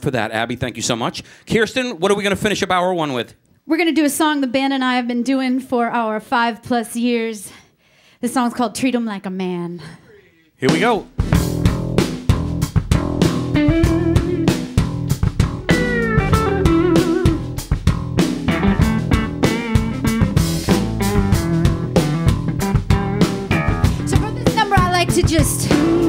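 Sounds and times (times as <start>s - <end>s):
bass guitar: 10.6s - 26.0s
drum kit beat: 10.6s - 26.0s
electric guitar with bent notes: 11.2s - 26.0s.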